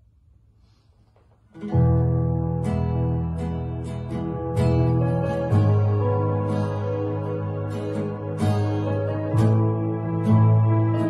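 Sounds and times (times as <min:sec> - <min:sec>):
acoustic guitar and keyboard chord: 0:01.6 - 0:11.0.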